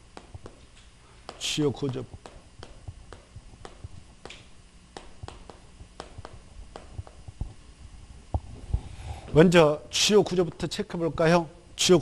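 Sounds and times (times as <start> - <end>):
chalk tapping on chalkboard: 0.1 - 7.3.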